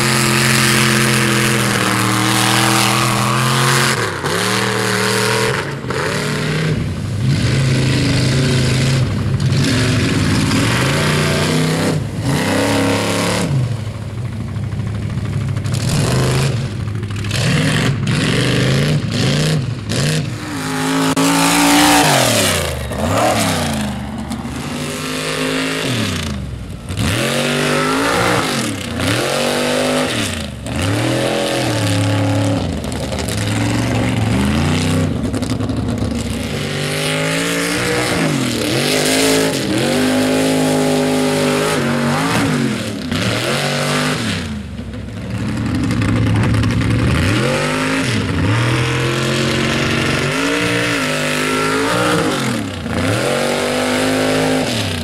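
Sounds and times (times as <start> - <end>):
truck engine revving hard: 0.0 - 55.0.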